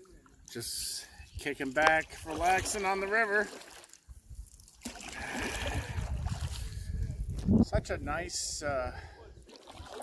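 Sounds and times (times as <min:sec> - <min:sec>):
paddle swishing through water: 0:01.9 - 0:06.9
wind rumbling on microphone: 0:05.2 - 0:09.4.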